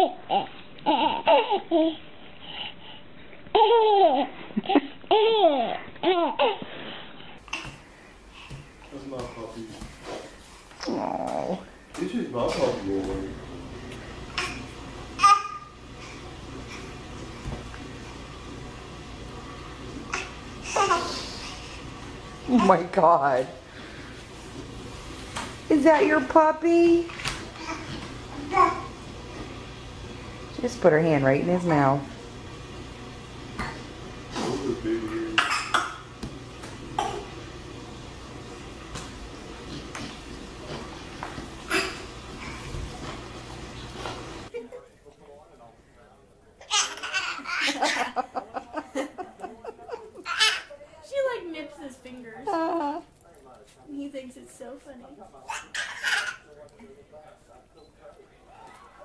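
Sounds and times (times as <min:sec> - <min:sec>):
toddler laughing: 0:00.0 - 0:02.0, 0:03.5 - 0:06.7, 0:20.1 - 0:21.2, 0:46.7 - 0:48.2, 0:49.8 - 0:50.7, 0:55.5 - 0:56.4.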